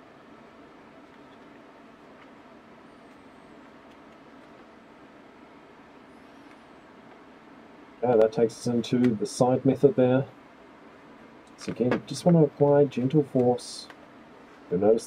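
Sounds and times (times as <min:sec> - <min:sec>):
faint room tone hiss: 0:00.0 - 0:15.0.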